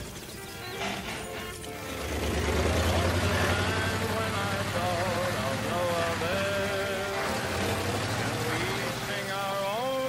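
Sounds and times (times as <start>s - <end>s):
truck engine running low: 0.0s - 10.0s
person singing: 2.9s - 10.0s.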